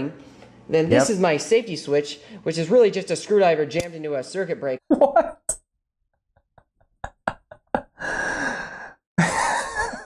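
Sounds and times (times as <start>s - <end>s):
man laughing breathily: 7.1s - 10.0s.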